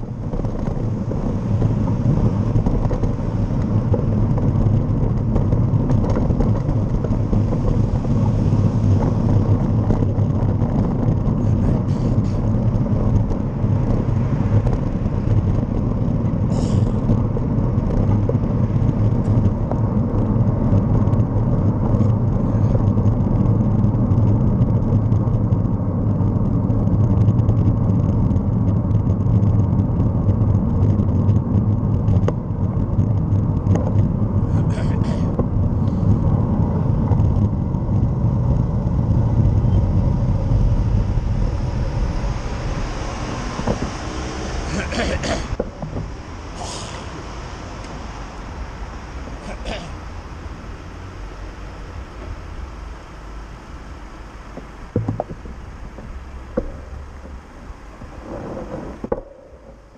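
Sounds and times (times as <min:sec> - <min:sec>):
wind and road noise: 0:00.0 - 0:59.9.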